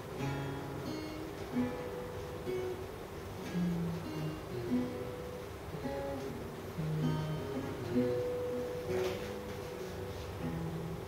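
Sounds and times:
acoustic guitar notes plucked: 0:00.0 - 0:11.0.

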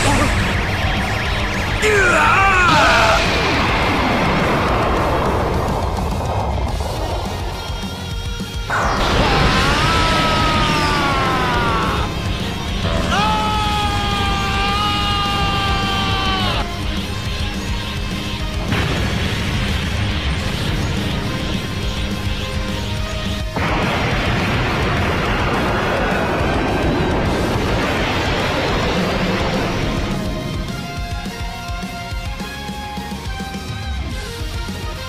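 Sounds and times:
explosion sound effects: 0:00.0 - 0:31.8
dramatic background music: 0:00.0 - 0:35.0.

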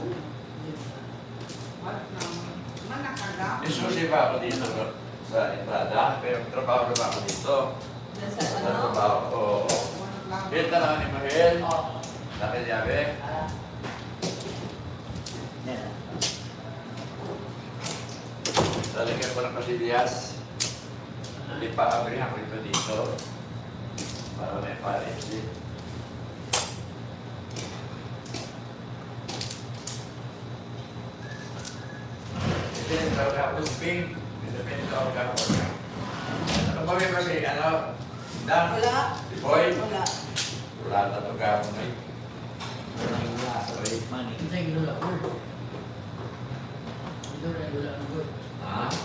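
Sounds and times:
mahjong tiles clacking: 0:29.3 - 0:30.1.

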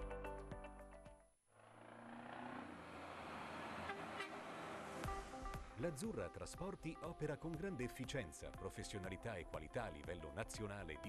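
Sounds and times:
rushing road vehicle noise: 0:01.6 - 0:05.8.

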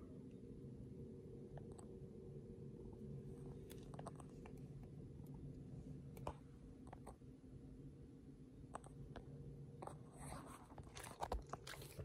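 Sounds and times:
steady low hum: 0:00.0 - 0:12.0
faint scraping and rubbing: 0:09.8 - 0:12.0.

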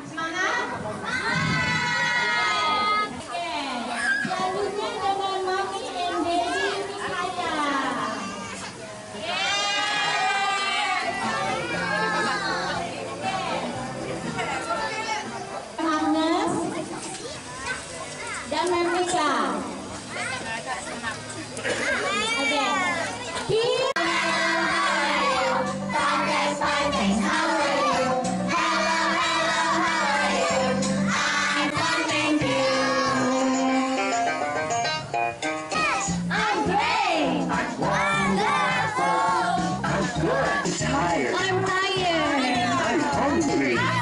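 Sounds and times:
young children's voices: 0:00.6 - 0:08.8, 0:14.7 - 0:19.1, 0:21.6 - 0:33.9, 0:35.7 - 0:36.9.

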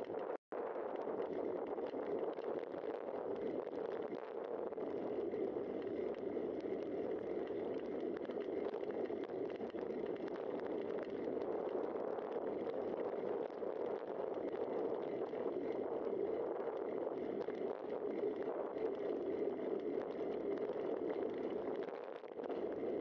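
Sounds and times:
faint bicycle ticks and rattles: 0:01.0 - 0:23.0
bicycle rolling on asphalt: 0:04.8 - 0:23.0.

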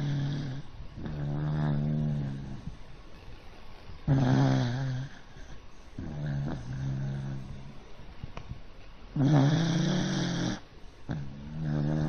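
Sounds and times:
dog snoring: 0:00.0 - 0:02.8, 0:04.0 - 0:07.9, 0:09.1 - 0:12.0.

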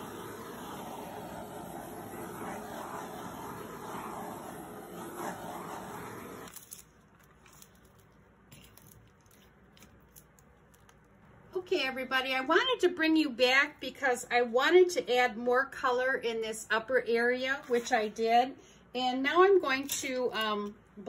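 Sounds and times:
torch flame hissing: 0:00.0 - 0:06.6.

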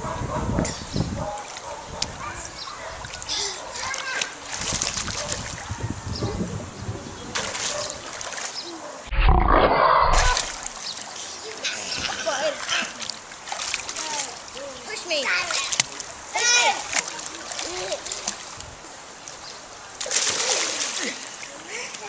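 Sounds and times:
pool water splashing: 0:01.2 - 0:05.8, 0:07.0 - 0:09.1, 0:10.1 - 0:22.0
children's voices: 0:02.1 - 0:04.6, 0:13.8 - 0:18.4
loud low rumble: 0:09.1 - 0:10.6.

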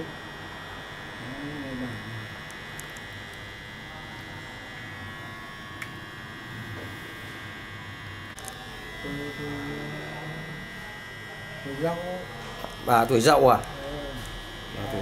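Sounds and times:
electrical hum with high whine: 0:00.0 - 0:15.0.

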